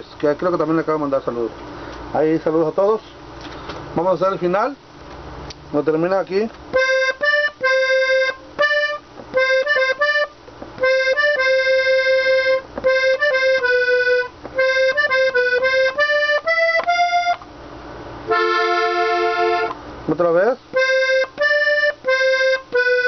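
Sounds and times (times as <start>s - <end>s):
button accordion playing melody: 6.7s - 17.5s, 18.3s - 19.8s, 20.7s - 23.0s.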